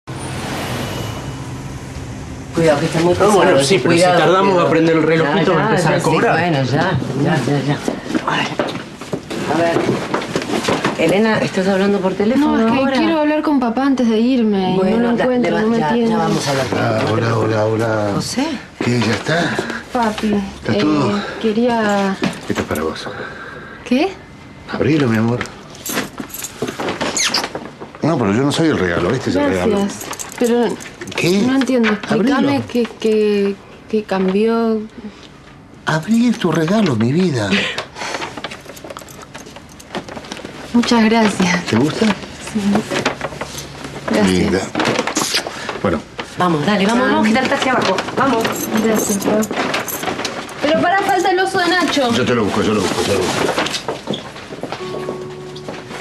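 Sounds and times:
car driving past: 0.0s - 3.4s
steady traffic noise: 0.0s - 3.8s
brief high squeaks: 27.1s - 27.5s
clothes rustling: 36.1s - 56.0s.

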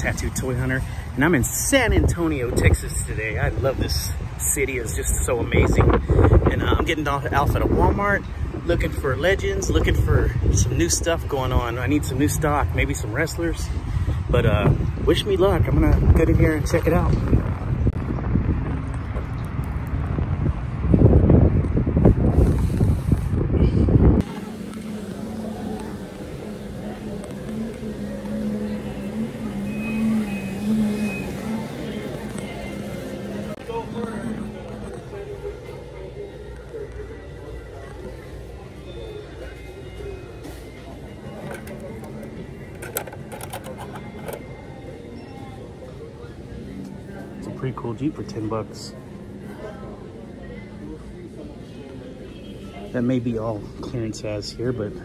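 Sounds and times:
wind buffeting microphone: 1.4s - 29.7s
indistinct voices: 23.7s - 47.6s.

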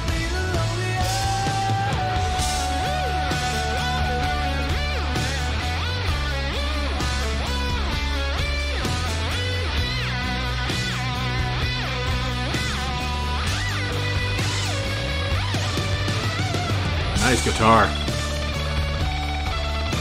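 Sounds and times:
steady bass line: 0.0s - 20.0s
distorted electric guitar solo: 1.1s - 20.0s.

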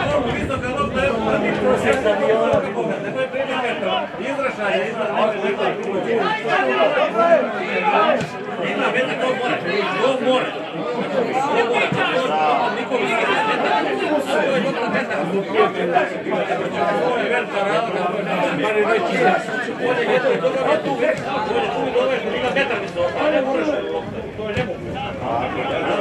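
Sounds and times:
hubbub of conversation: 0.0s - 26.0s.

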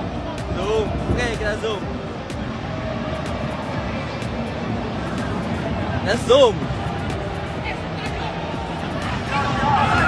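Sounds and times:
faint music: 0.0s - 10.0s
stadium crowd noise: 0.0s - 10.0s.

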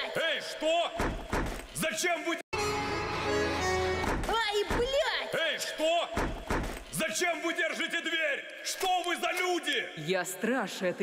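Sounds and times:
heavy thuds on a door: 1.0s - 1.6s.

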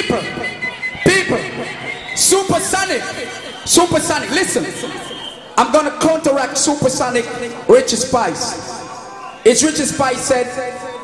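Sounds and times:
music over a pa system: 0.0s - 5.5s.

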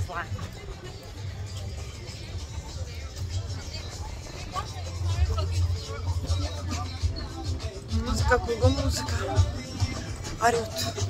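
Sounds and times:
faint music: 0.0s - 11.0s
faint voices: 0.0s - 11.0s.

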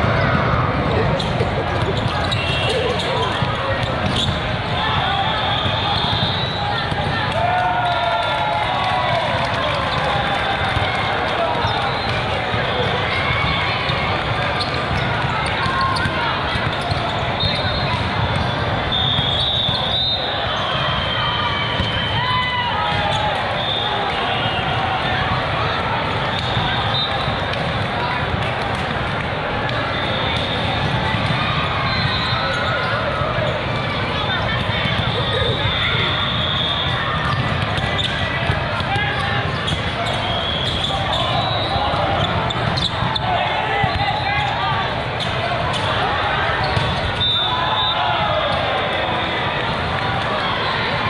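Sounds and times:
many voices calling out: 0.0s - 51.0s.

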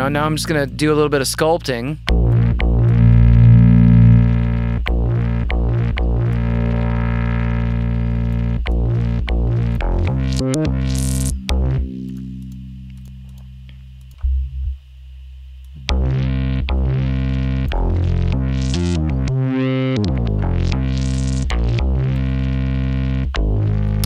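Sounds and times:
low synth note: 2.1s - 8.4s
bright synth sweep: 2.3s - 5.0s.

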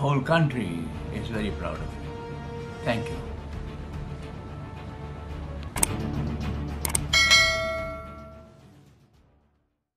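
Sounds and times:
bell ding sound effect: 7.1s - 8.6s.

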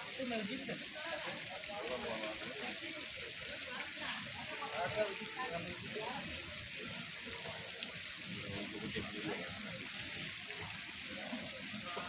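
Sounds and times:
faint voices talking: 0.0s - 12.0s
open-air hiss: 0.0s - 12.0s.

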